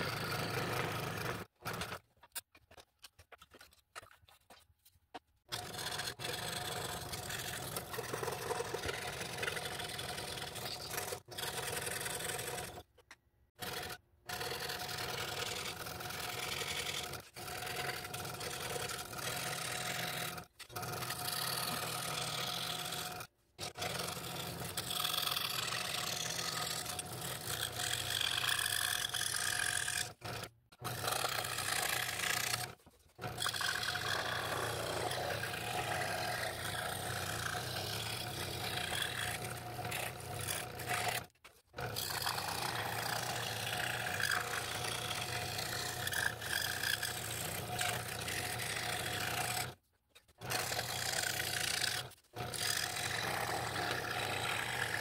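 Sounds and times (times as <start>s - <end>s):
scroll saw cutting wood: 0.0s - 55.0s.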